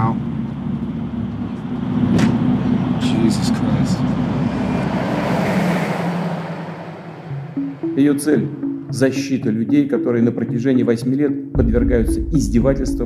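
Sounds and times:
road and engine drone: 0.0 - 8.9.

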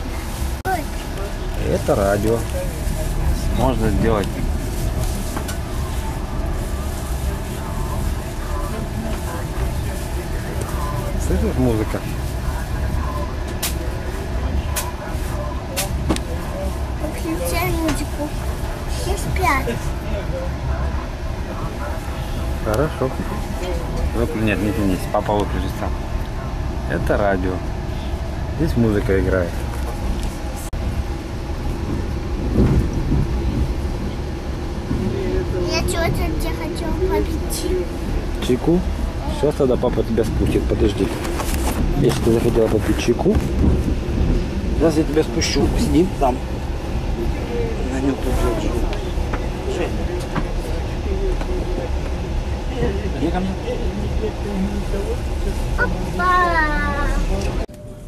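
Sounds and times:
train rumble inside compartment: 0.0 - 58.0.

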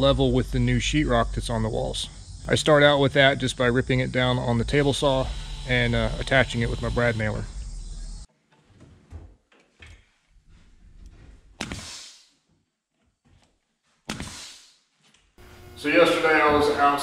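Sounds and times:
nail gun shot: 11.6 - 12.0, 14.1 - 14.5
short hiss of air: 11.6 - 12.3.

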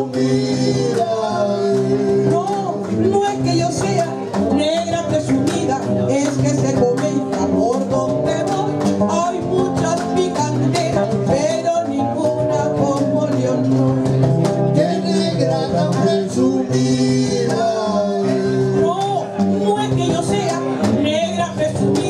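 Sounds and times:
acoustic guitars playing: 0.0 - 22.0
cajon drum pulse: 0.0 - 22.0.

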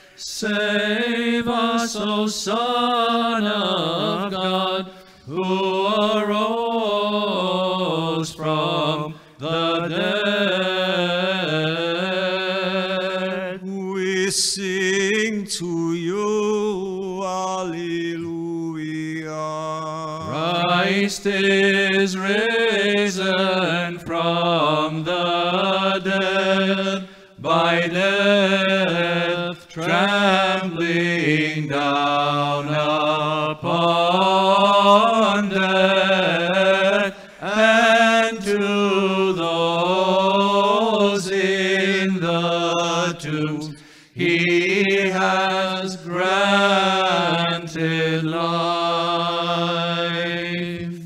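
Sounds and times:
man chanting a hymn: 0.0 - 51.0.

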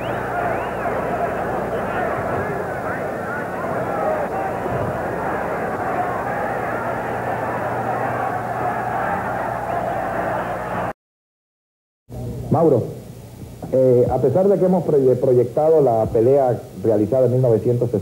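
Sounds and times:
low electrical hum: 0.0 - 10.9, 12.1 - 18.0
crowd talking and shouting: 0.0 - 11.0.

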